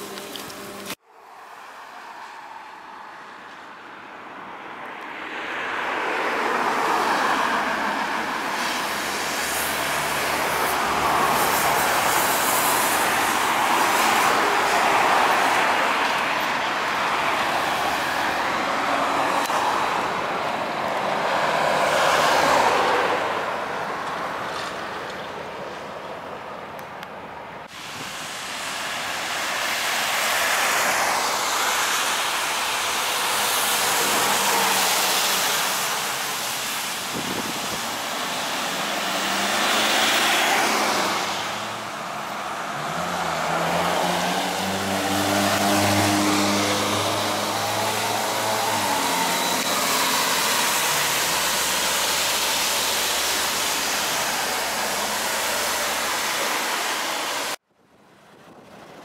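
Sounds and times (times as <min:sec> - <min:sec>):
tyre hiss on wet road: 0:05.4 - 0:24.9, 0:27.7 - 0:57.6
trolleybus electric whine: 0:45.6 - 0:57.5.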